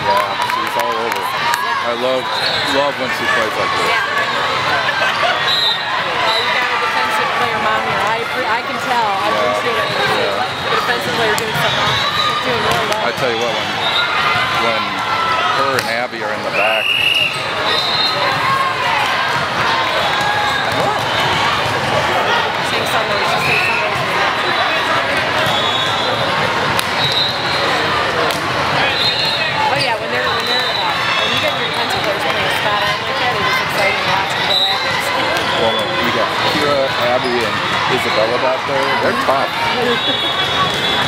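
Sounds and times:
voices chattering and calling: 0:00.0 - 0:41.0
referee whistle blasts: 0:05.4 - 0:06.6, 0:16.5 - 0:18.2, 0:25.4 - 0:26.2, 0:26.9 - 0:27.7.

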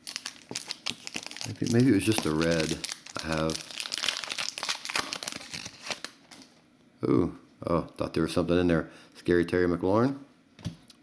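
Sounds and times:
foil wrapper crinkling: 0:00.0 - 0:06.5.

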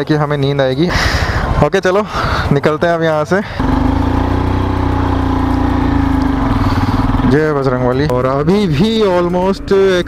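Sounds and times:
motorcycle engine pulling away: 0:03.6 - 0:09.2.

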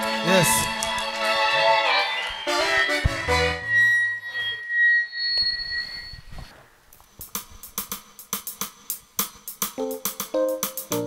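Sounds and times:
high-pitched feedback ring: 0:02.3 - 0:06.5
higher feedback ring: 0:02.4 - 0:06.5.

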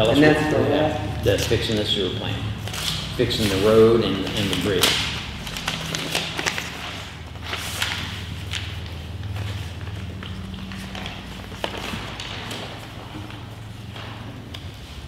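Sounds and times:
steady low hum: 0:00.0 - 0:15.0
paper rustling and crackling: 0:02.6 - 0:15.0.

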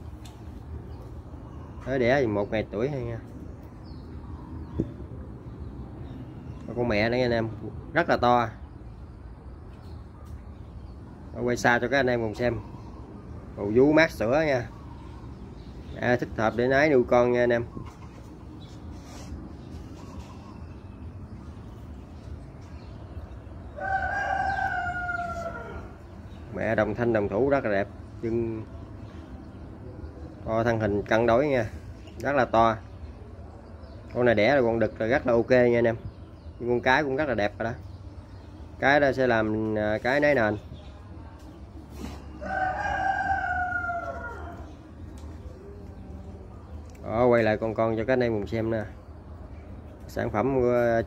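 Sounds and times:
low steady background noise: 0:00.0 - 0:51.0
rooster crowing: 0:23.7 - 0:26.1, 0:42.3 - 0:44.8.

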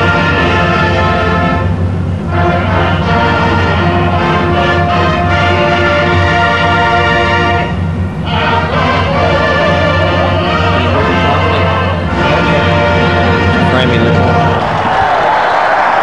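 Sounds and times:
marching band playing: 0:00.0 - 0:16.0.

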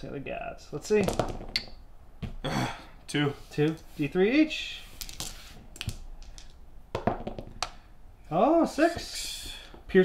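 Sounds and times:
dice clattering on a table: 0:01.0 - 0:01.8, 0:04.9 - 0:07.8.

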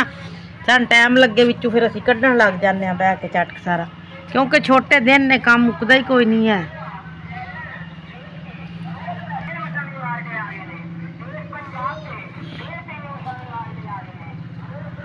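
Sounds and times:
indistinct voices: 0:00.0 - 0:15.0
low engine hum: 0:00.0 - 0:15.0.

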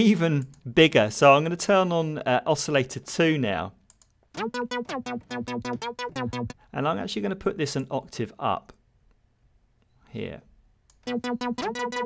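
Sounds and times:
sawtooth synth notes: 0:04.4 - 0:06.6, 0:11.0 - 0:12.0.

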